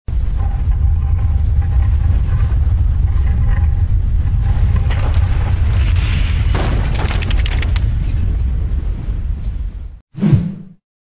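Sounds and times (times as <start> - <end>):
deep rumble: 0.1 - 10.0.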